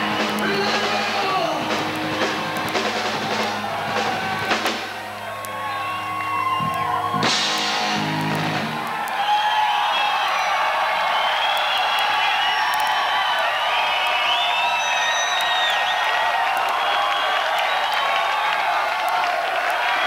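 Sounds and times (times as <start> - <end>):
crowd cheering: 0.0 - 20.0
people yelling: 0.0 - 20.0
steady clapping: 0.0 - 20.0
shrill whistles: 5.4 - 7.4, 9.0 - 18.7.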